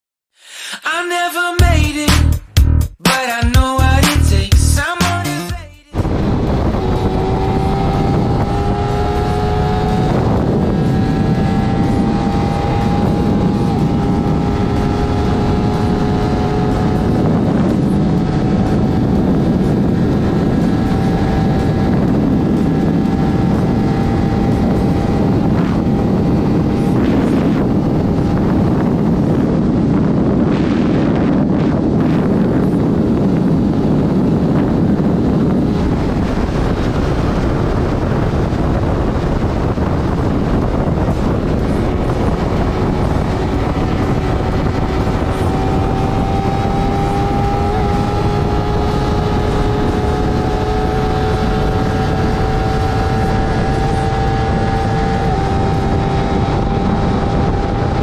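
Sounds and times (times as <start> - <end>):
motorcycle engine cruising: 6.0 - 58.0
wind rush on microphone: 6.0 - 58.0.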